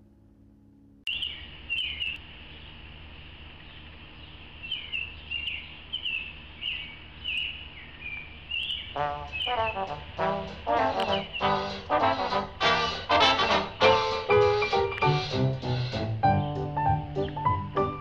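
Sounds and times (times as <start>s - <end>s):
low outdoor hum: 0.0s - 18.0s
small bird chirping: 1.1s - 12.3s, 14.7s - 17.6s.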